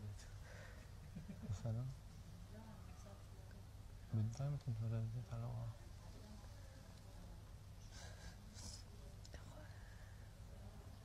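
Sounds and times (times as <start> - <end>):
steady low hum: 0.0 - 11.0
faint whispering: 5.5 - 11.0.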